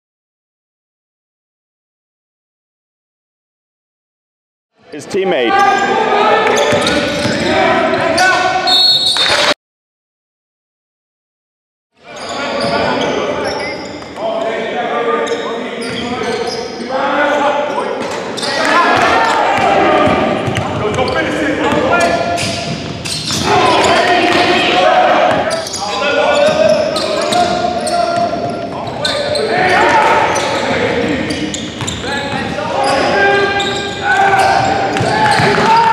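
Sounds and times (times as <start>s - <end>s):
echoing indistinct voices: 4.8s - 8.7s, 12.0s - 35.9s.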